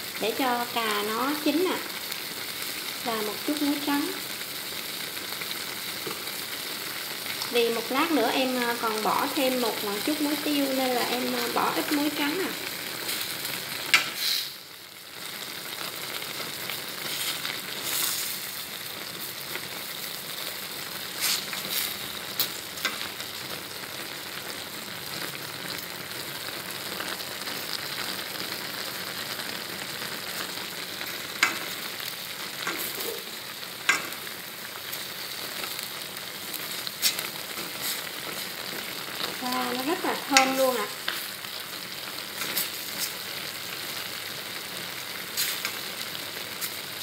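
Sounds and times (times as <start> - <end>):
food sizzling in a pan: 0.0 - 47.0
chopsticks clicking on pan: 13.9 - 14.2, 31.4 - 31.7, 32.6 - 33.0, 33.8 - 34.2, 40.3 - 41.2.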